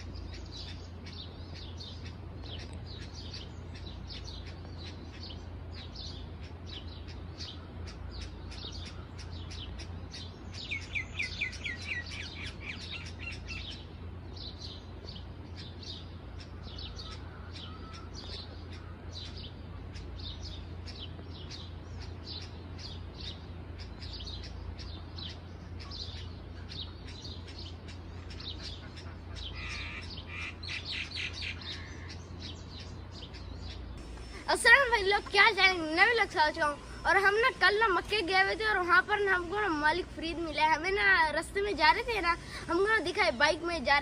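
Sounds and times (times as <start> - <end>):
low steady hum: 0.0 - 44.0
small birds chirping: 0.0 - 44.0.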